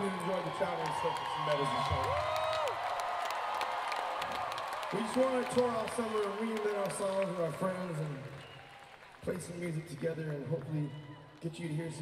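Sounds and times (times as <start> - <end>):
crowd applauding and cheering: 0.0 - 12.0.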